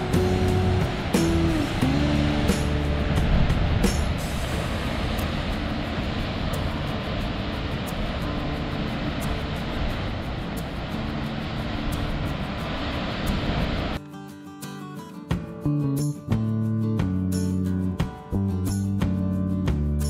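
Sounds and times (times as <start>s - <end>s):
low rumble: 0.0s - 14.0s
ocean waves breaking against cliff: 0.0s - 14.0s.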